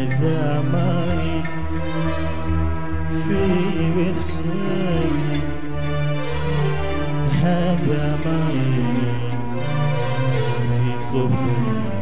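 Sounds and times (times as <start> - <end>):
keyboard double bass and oud music: 0.0 - 12.0.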